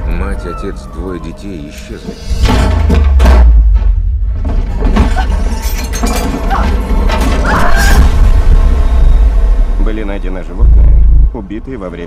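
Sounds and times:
deep low rumble: 6.2 - 12.0.

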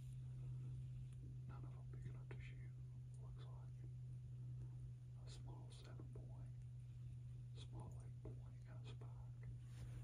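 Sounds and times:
steady low hum: 0.0 - 10.0
faint whispering voices: 0.4 - 9.6.

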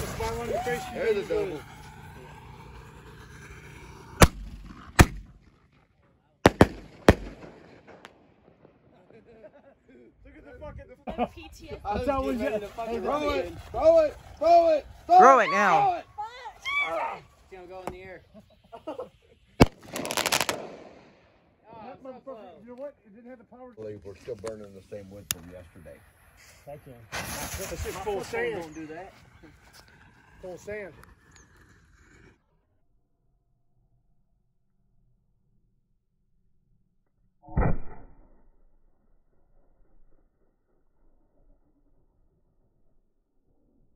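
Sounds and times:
firework bang: 0.0 - 5.6, 6.5 - 9.4, 19.6 - 21.3, 27.1 - 28.3, 37.5 - 38.5
faint firework crack: 0.0 - 5.8, 6.4 - 9.5, 19.5 - 21.4, 24.4 - 32.4.

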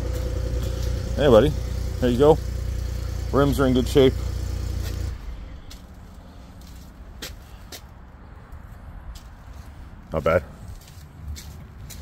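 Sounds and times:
pickup engine idling: 0.0 - 6.8.

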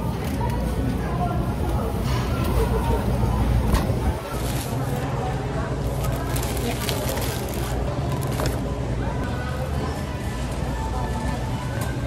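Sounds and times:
shopping cart rolling rumble: 0.0 - 11.4.

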